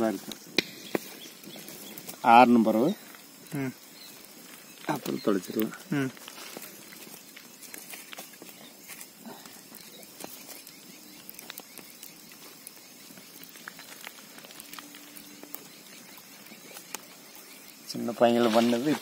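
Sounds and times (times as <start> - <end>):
clicks and crackles on gravel: 0.0 - 19.0.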